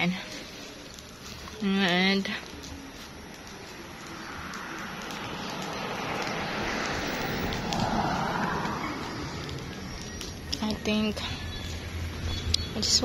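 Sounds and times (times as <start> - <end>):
vehicle passing by: 3.4 - 12.4.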